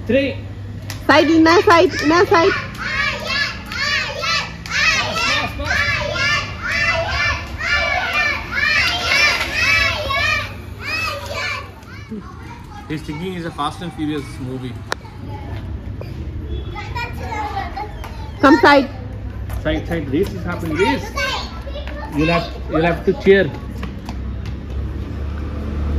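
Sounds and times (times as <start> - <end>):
young children chattering: 1.0 - 24.3.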